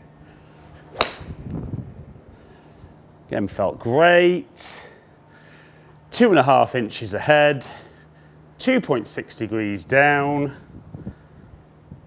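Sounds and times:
golf club striking ball: 0.9s - 1.5s.

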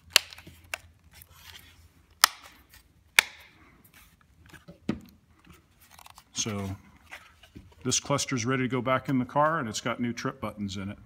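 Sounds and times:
plastic cover snapping on: 0.0s - 0.9s.

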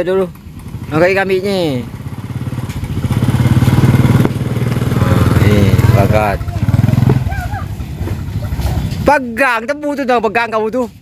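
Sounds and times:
small motorcycle engine running: 0.0s - 9.1s.

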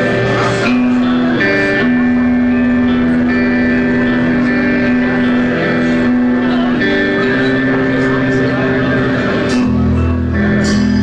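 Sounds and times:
rock band playing sustained notes: 0.0s - 11.0s.

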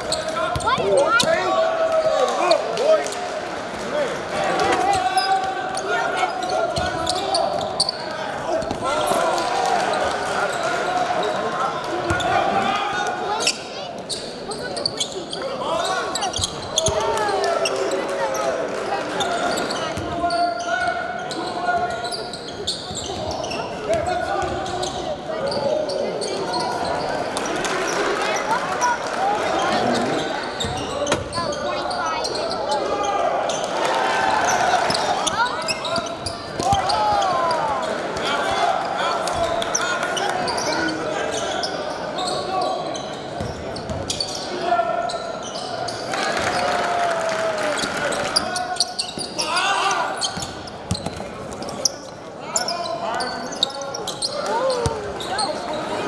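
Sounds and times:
crowd voices and shouts: 0.0s - 56.0s.

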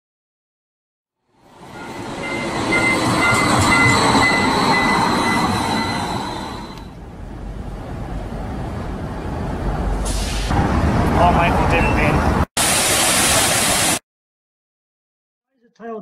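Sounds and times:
streetcar rumbling with high whine: 1.2s - 12.5s
outdoor noise: 1.2s - 14.0s.

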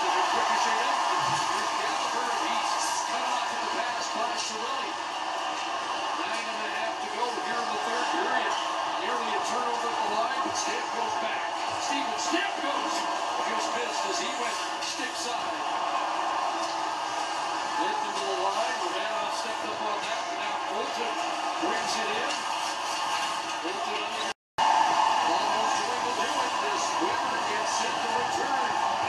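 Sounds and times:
arena crowd noise: 0.0s - 29.0s
overlapping voices: 0.0s - 29.0s.

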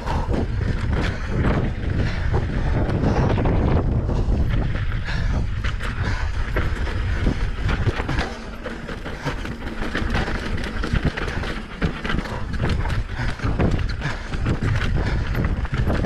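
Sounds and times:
bike rattling: 0.0s - 16.0s
wind rumble on microphone: 0.0s - 16.0s.

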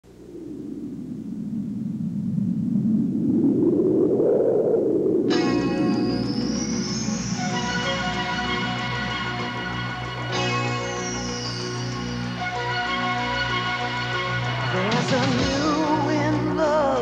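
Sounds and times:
whooshing wind-like noise: 0.0s - 14.6s
sustained synthesizer chord: 5.2s - 15.0s.

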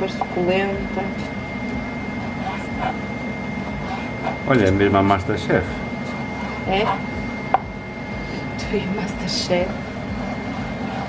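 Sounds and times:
machine hum with high whine: 0.0s - 11.0s.

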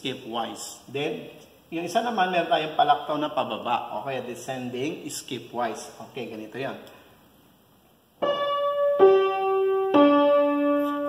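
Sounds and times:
upright piano notes: 8.2s - 11.0s.

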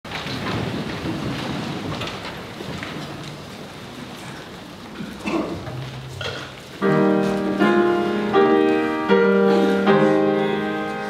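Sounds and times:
low rumbling room noise: 0.1s - 11.0s.

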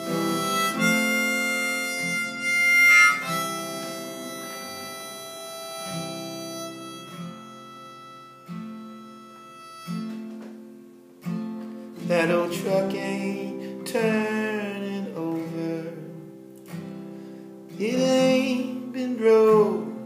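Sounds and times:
harmonica playing sustained notes: 0.0s - 10.7s
acoustic guitar chords strummed: 0.0s - 20.0s.

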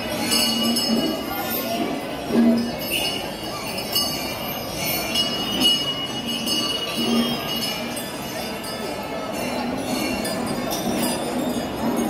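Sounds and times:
crowd hubbub: 0.0s - 12.0s
metal percussion ringing: 0.0s - 12.0s.

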